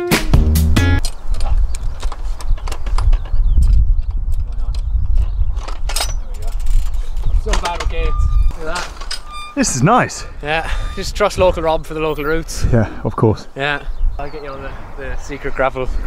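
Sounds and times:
background music: 0.0s - 1.0s
wind buffeting microphone: 1.0s - 16.0s
voices: 6.2s - 16.0s.

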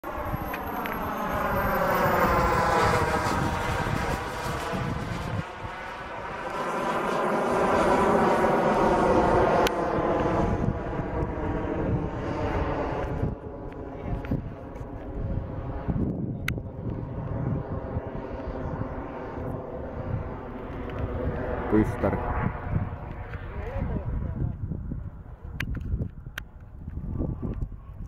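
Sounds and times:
model jet turbine passing: 0.0s - 26.4s.

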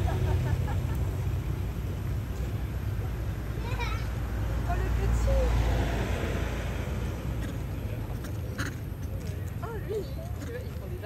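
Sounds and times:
vehicle passing with tyre hiss: 0.0s - 11.0s.

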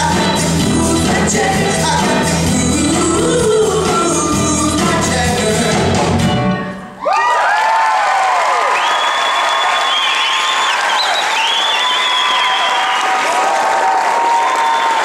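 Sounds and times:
audience applauding and cheering: 7.0s - 15.0s
whoops and screams: 7.0s - 15.0s.

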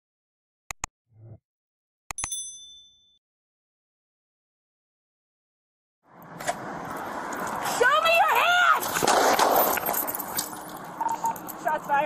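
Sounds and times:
notification bell ding: 2.1s - 3.2s.

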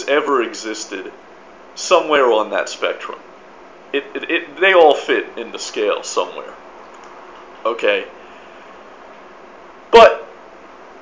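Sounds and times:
man talking: 0.0s - 1.2s, 1.8s - 3.2s, 3.9s - 6.6s, 7.6s - 8.2s, 9.9s - 10.3s
faint background hiss: 0.0s - 11.0s.

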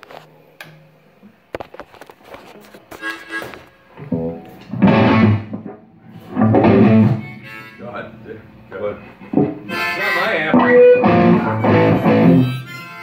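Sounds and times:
harmonica wailing: 2.9s - 3.8s, 6.6s - 8.2s, 9.5s - 13.0s
electric guitar: 3.4s - 7.6s, 9.0s - 13.0s.

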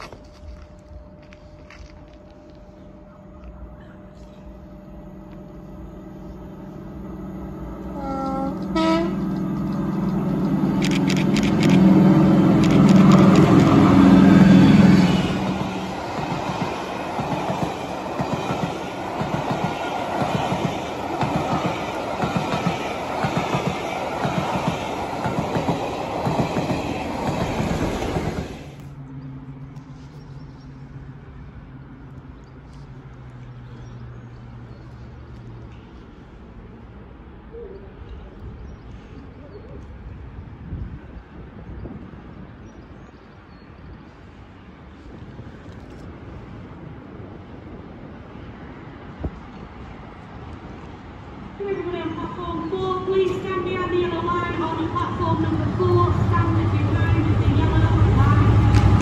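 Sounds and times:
station background noise: 0.0s - 30.1s, 43.4s - 59.0s
locomotive engine: 0.0s - 30.2s, 53.3s - 59.0s
train horn: 2.8s - 10.2s.

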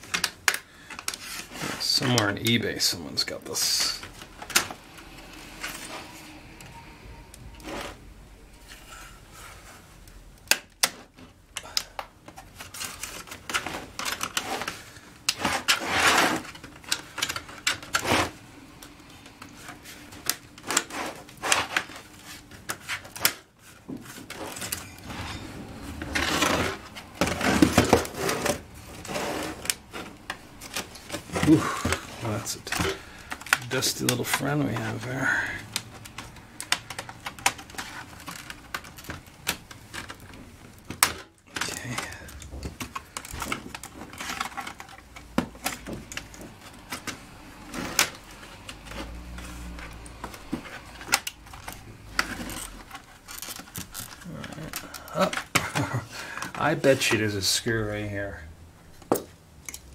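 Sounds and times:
plastic laptop casing clicks: 35.6s - 41.7s.

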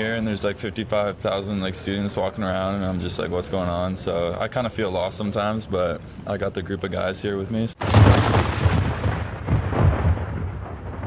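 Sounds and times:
deep rumbling boom: 7.8s - 11.0s.

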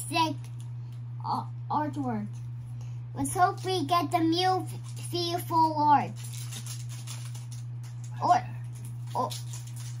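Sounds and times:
child speaking: 0.0s - 0.6s, 1.2s - 2.4s, 3.1s - 6.2s, 8.1s - 9.5s
steady low hum: 0.0s - 10.0s.

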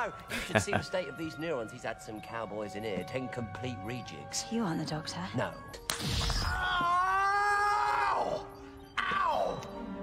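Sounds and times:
man screaming: 6.6s - 9.6s.

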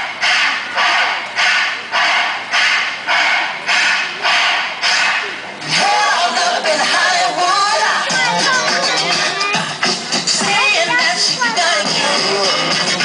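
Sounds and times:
backing track over speaker: 0.0s - 13.0s.

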